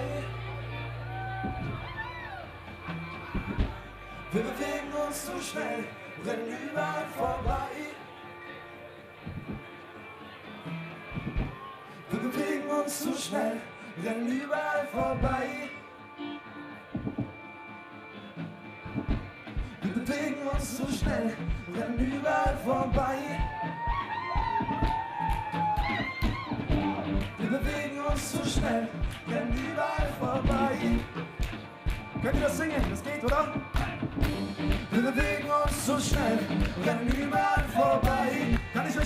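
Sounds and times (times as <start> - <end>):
bass guitar: 0.0 - 5.6, 18.8 - 39.0
plucked guitar: 0.0 - 7.8, 14.9 - 39.0
drum beat: 11.1 - 11.6, 17.0 - 17.3, 18.9 - 19.8, 20.6 - 39.0
live band playing: 17.0 - 39.0.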